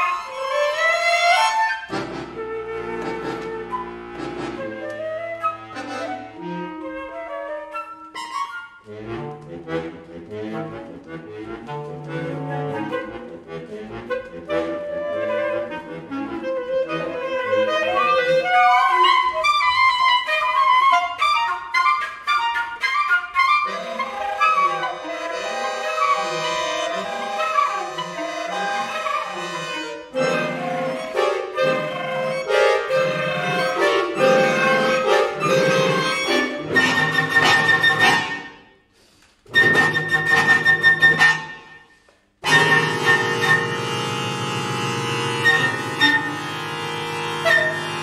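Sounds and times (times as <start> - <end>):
flute: 0.0 - 38.8, 39.5 - 44.1, 45.3 - 46.5, 47.4 - 48.0
accordion: 0.0 - 48.0
clarinet: 0.0 - 48.0.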